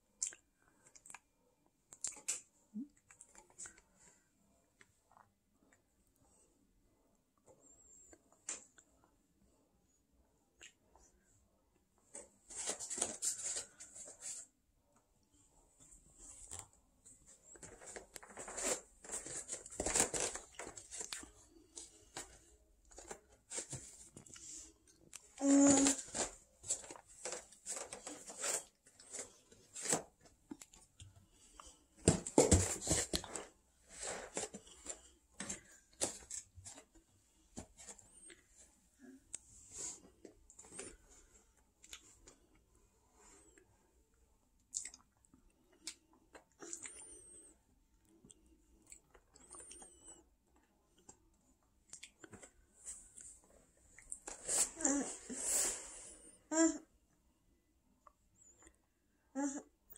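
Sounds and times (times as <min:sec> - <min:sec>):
child eating with mouth smacks: 0:00.1 - 0:03.9, 0:10.5 - 0:11.1, 0:44.6 - 0:47.1, 0:51.8 - 0:53.3.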